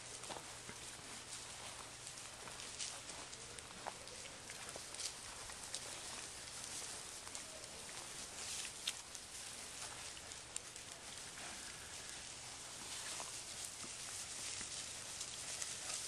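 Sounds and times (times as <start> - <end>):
hog rustling in dry grass: 0.0 - 16.0
steady background hiss: 0.0 - 16.0.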